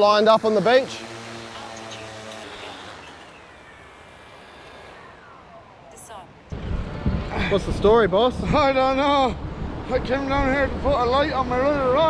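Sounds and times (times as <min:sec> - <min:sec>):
thin whine sliding down: 0:00.0 - 0:06.5
drone motors humming: 0:00.0 - 0:08.7.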